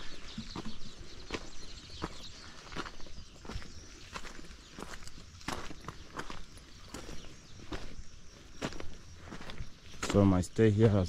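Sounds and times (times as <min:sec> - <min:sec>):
footsteps on loose stones: 0:00.0 - 0:11.0.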